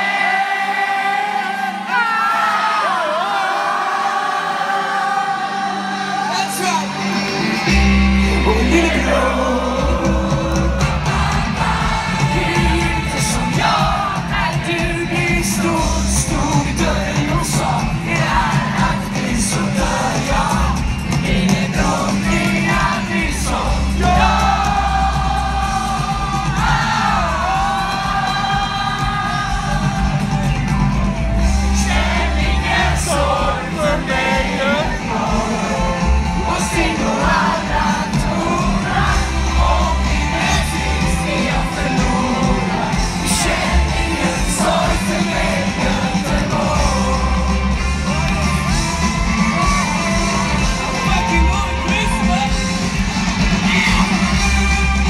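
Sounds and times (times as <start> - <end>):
crowd singing along to band: 0.0 - 55.0
heavy bass: 7.4 - 55.0
man singing close to microphone: 12.3 - 20.7.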